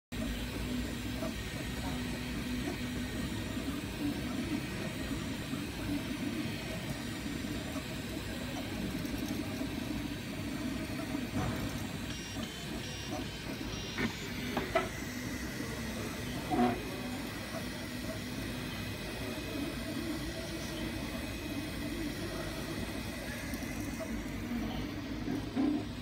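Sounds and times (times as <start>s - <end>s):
cooling fans hissing: 0.2s - 26.0s
stepper motors humming: 0.2s - 26.0s.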